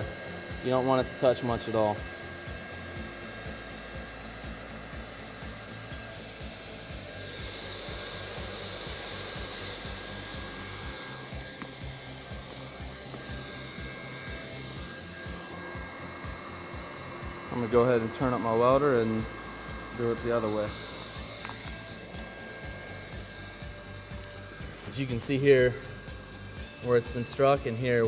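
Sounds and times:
hot-air welding gun hissing: 0:00.0 - 0:28.0.

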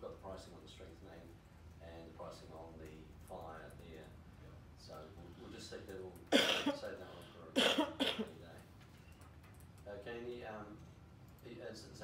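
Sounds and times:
person coughing: 0:06.3 - 0:06.9, 0:07.6 - 0:08.3.

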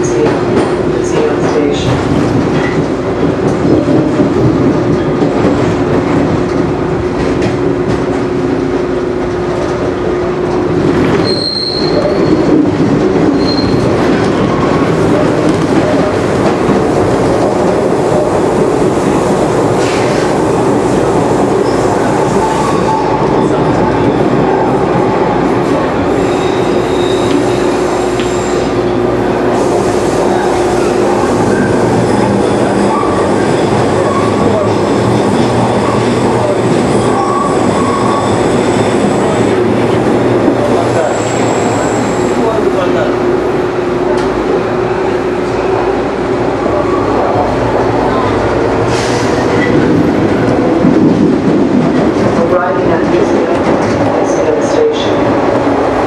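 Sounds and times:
subway wheels rumbling on rail: 0:00.0 - 0:56.0
high-pitched wheel squeals: 0:11.2 - 0:12.5, 0:13.4 - 0:13.8, 0:31.6 - 0:39.2.

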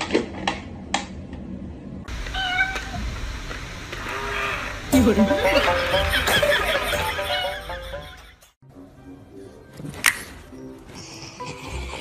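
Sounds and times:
cat meowing: 0:02.3 - 0:03.0.

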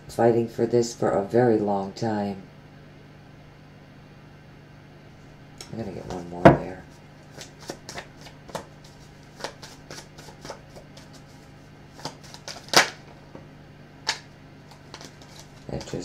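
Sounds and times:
cards being shuffled: 0:06.9 - 0:13.2, 0:14.0 - 0:16.0
card snap: 0:12.0 - 0:13.0, 0:14.0 - 0:14.3.

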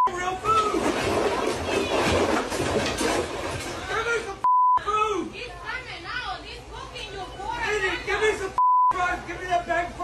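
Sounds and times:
censor bleep: 0:04.4 - 0:04.8, 0:08.6 - 0:09.0.

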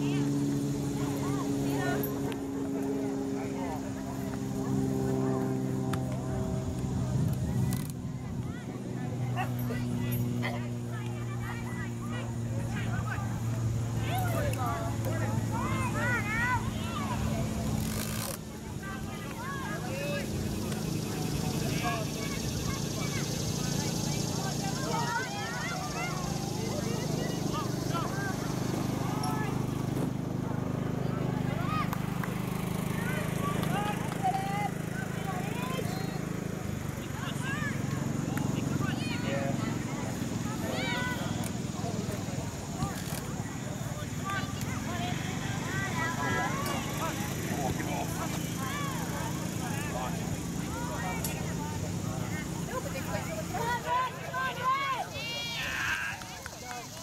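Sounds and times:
distant voices calling out: 0:00.0 - 0:57.0.

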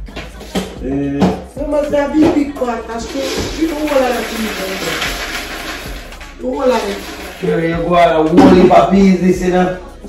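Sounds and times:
person's voice: 0:00.8 - 0:05.2, 0:06.4 - 0:10.0.

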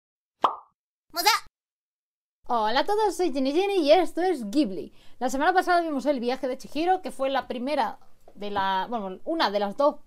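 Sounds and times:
cartoon pop sound effect: 0:00.4 - 0:00.8
high-pitched voice exclamation: 0:01.2 - 0:01.5.

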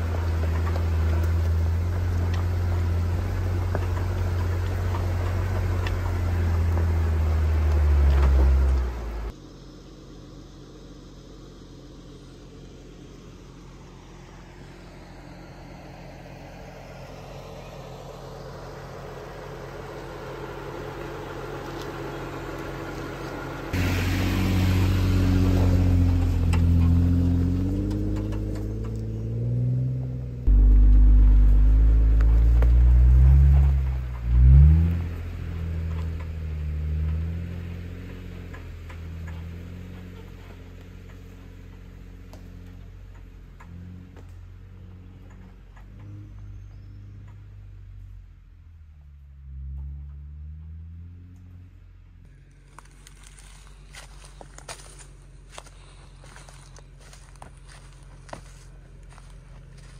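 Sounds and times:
engine rev: 0:00.0 - 0:59.9
off-road vehicle engine crawling: 0:00.0 - 0:59.9.

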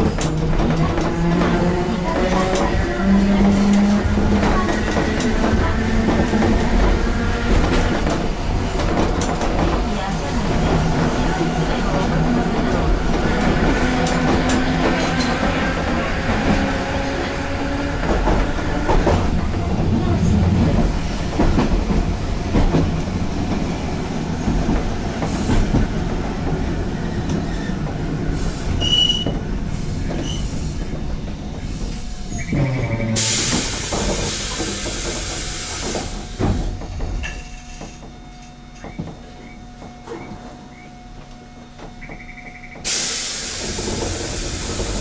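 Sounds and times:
tram wheels rolling and clattering: 0:00.0 - 0:45.0.

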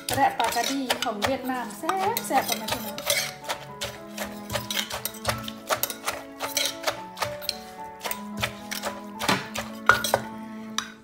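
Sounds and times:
pestle pounding in clay mortar: 0:00.0 - 0:10.3
background music: 0:00.0 - 0:11.0.

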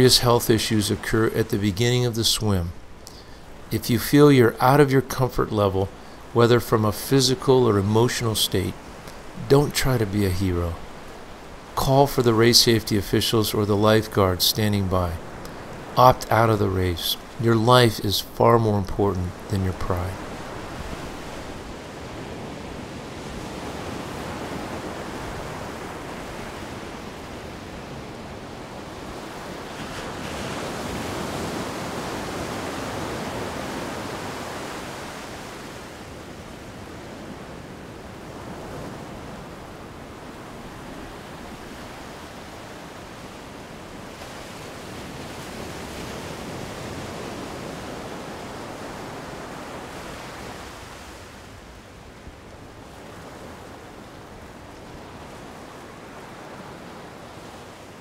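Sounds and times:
ocean waves rushing: 0:00.0 - 0:58.0.

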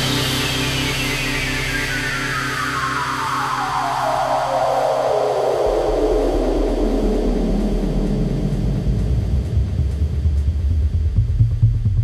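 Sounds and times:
deep bass note: 0:05.7 - 0:12.0
progressive house music: 0:06.4 - 0:12.0.

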